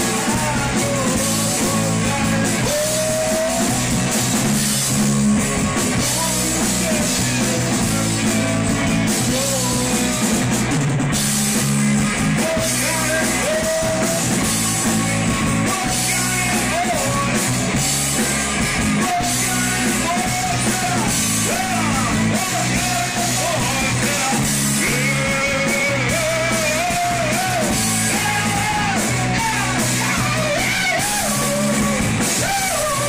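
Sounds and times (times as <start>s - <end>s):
man singing: 0.0s - 4.2s, 5.7s - 10.5s, 12.0s - 33.0s
live rock band playing: 0.0s - 33.0s.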